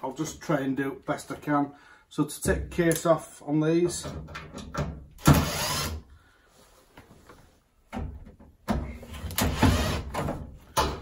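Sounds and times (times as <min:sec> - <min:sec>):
cordless drill running: 0:05.2 - 0:06.0, 0:09.5 - 0:10.1.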